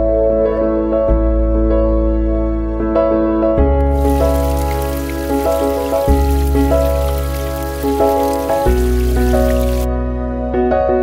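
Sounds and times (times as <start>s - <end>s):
steady rain-like hiss: 3.9s - 9.9s.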